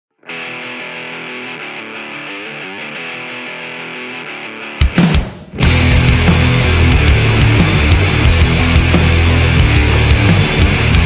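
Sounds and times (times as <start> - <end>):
filtered guitar chords: 0.1 - 11.0
rock band with distorted guitars: 0.2 - 11.0.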